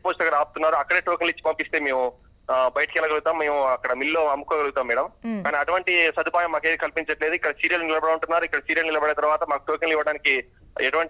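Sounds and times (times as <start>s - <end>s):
man talking over phone: 0.0s - 11.0s.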